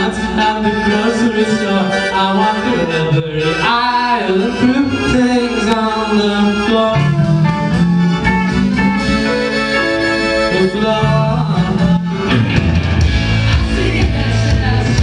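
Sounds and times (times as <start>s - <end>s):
person singing: 0.0s - 7.8s, 10.4s - 12.6s, 13.4s - 15.0s
live rock band: 0.0s - 15.0s
drums: 7.0s - 15.0s.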